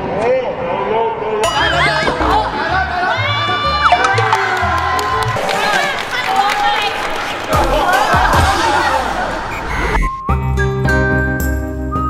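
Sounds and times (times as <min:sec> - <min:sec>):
young women cheering and shrieking: 0:01.6 - 0:06.9.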